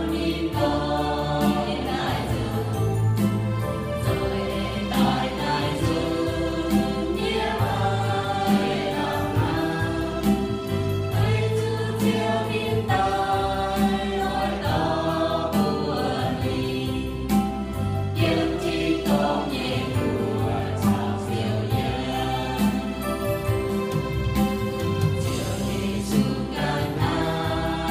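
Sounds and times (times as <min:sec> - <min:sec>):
group singing a hymn: 0:00.0 - 0:27.9.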